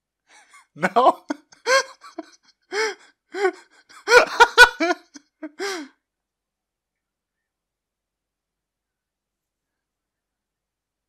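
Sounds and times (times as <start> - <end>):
man laughing: 0.4 - 5.9.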